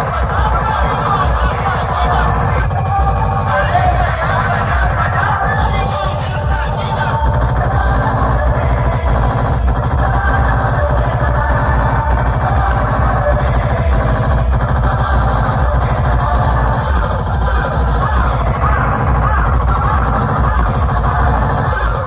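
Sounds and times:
loud electronic dance music: 0:00.0 - 0:22.0.

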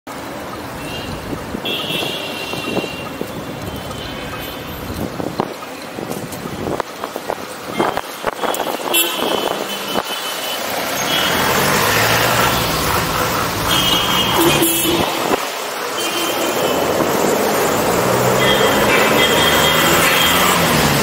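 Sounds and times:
cars and trucks passing: 0:00.1 - 0:21.0
short high horn toots: 0:13.7 - 0:15.4.

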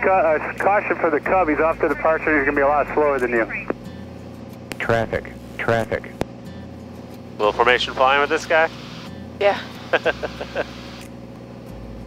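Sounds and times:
light airplane engine drone: 0:00.0 - 0:12.0
person laughing: 0:09.7 - 0:10.9.

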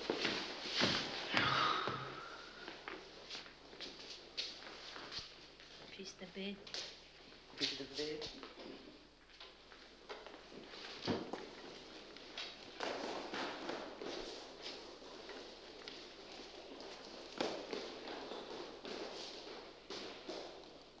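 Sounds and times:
footsteps on hard floor: 0:00.0 - 0:06.0, 0:07.6 - 0:20.9.

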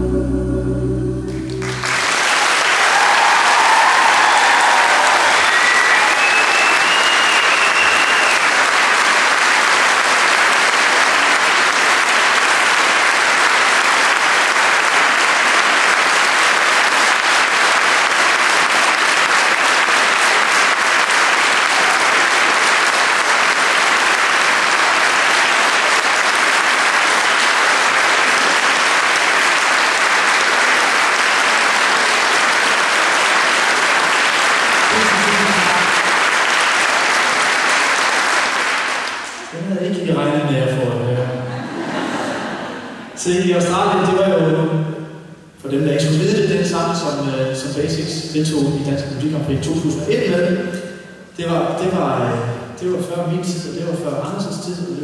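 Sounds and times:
audience applauding: 0:01.3 - 0:39.6.

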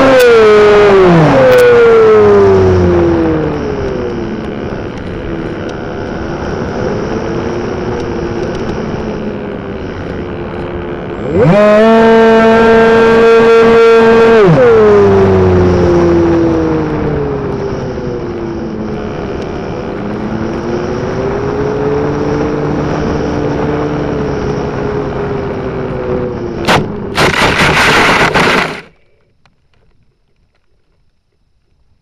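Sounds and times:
model airplane motor and propeller: 0:00.0 - 0:31.8.

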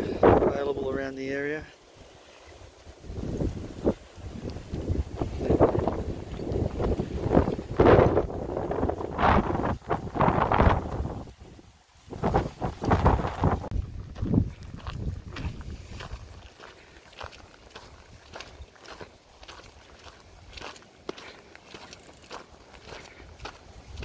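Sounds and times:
wind buffeting microphone: 0:00.0 - 0:00.9, 0:02.9 - 0:20.8, 0:22.3 - 0:24.0.

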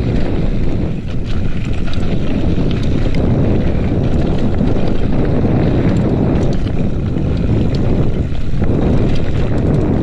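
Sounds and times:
bike tyres on dirt: 0:00.0 - 0:10.0
gravel and bike rattles: 0:00.0 - 0:10.0
wind rumble on microphone: 0:00.0 - 0:10.0.

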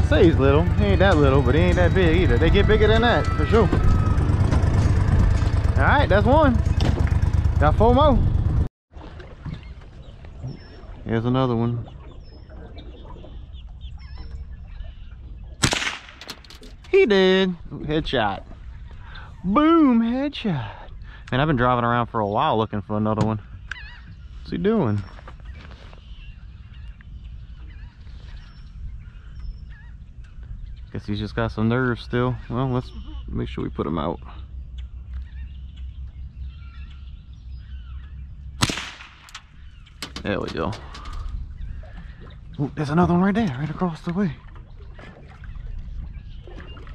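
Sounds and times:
low steady rumble: 0:00.0 - 0:08.7, 0:26.0 - 0:46.9
faint bird calls: 0:09.4 - 0:15.6, 0:23.3 - 0:46.9
rifle shot: 0:15.6 - 0:16.4, 0:38.6 - 0:39.4.

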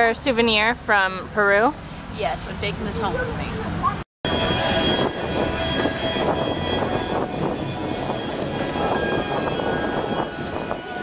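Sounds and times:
city street hubbub: 0:00.0 - 0:11.0
steady high whines: 0:04.3 - 0:11.0.

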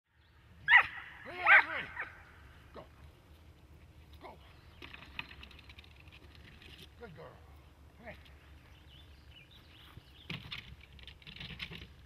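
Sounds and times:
dog barking: 0:00.7 - 0:02.1.

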